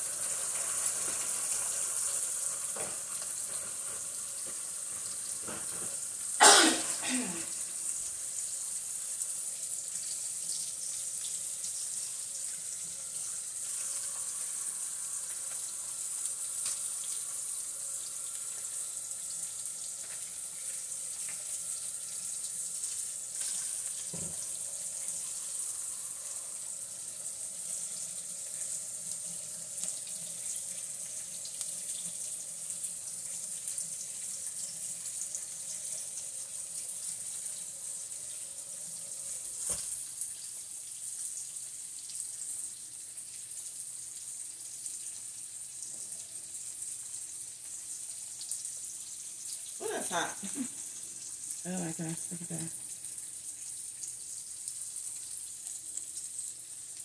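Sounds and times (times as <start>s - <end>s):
bacon sizzling in a frying pan: 0.0s - 57.0s
laugh-like voice: 50.0s - 50.8s, 51.7s - 52.8s.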